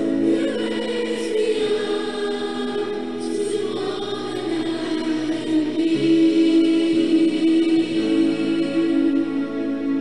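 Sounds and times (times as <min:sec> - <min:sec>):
choir singing long held notes: 0:00.0 - 0:10.0.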